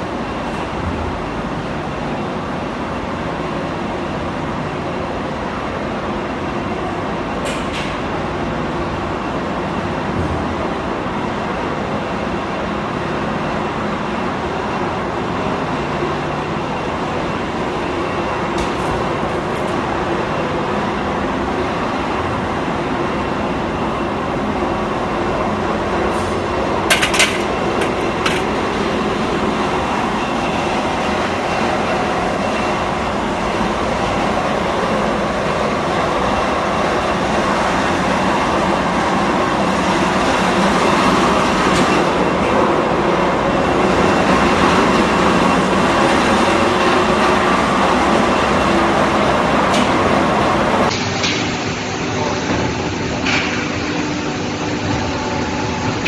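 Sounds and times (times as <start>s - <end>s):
molding machine rumbling: 17.0s - 56.0s.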